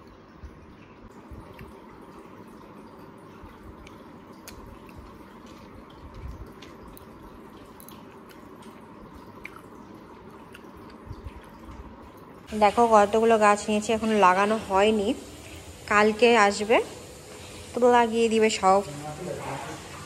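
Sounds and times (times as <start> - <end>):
low room hum: 0.0 - 20.0
mouth chewing clicks and smacks: 3.8 - 11.8.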